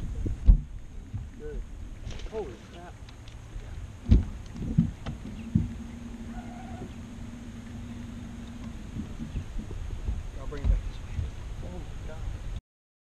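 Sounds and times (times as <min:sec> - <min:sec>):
steady low hum: 0:00.0 - 0:12.6
heavy thumps on boat deck: 0:00.2 - 0:01.4, 0:04.0 - 0:05.9, 0:08.6 - 0:11.4.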